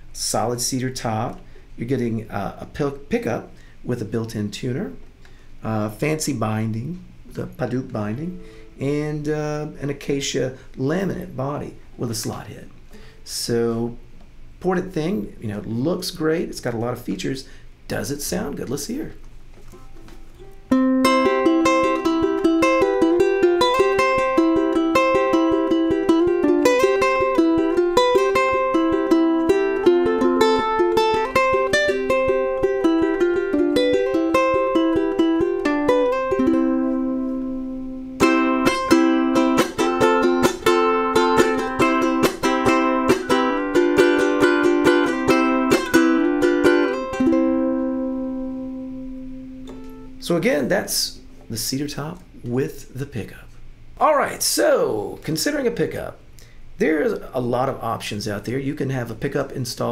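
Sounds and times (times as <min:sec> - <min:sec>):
ukulele playing notes and chords: 0:19.7 - 0:50.2.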